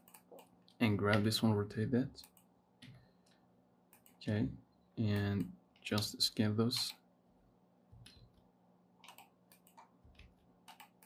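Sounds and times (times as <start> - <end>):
person speaking: 4.1 - 7.1
mouse and keyboard clicks: 9.0 - 11.0.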